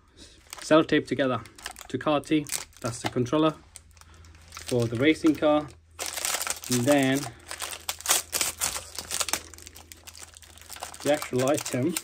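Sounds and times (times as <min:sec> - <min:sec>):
plastic crinkling: 0:00.4 - 0:12.0.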